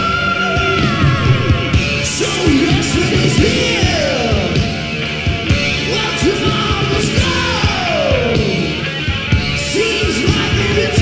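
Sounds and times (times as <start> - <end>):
heavy metal song: 0.0 - 11.0
yelled vocals: 0.0 - 11.0.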